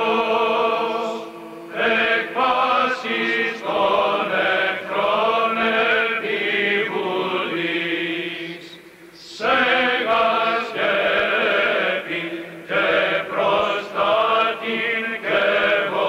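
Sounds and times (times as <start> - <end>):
voices chanting: 0.0 - 16.0.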